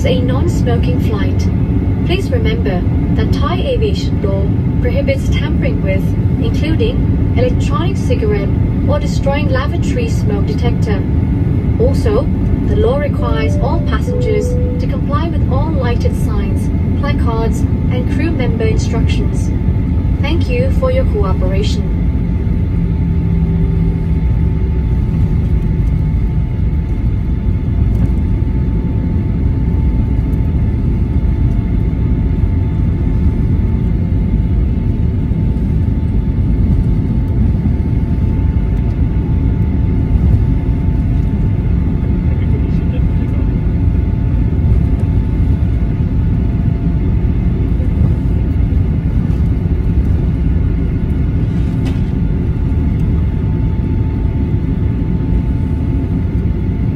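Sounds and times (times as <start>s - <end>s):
faint steady whine: 0.0s - 56.9s
jet engine rumble: 0.0s - 56.9s.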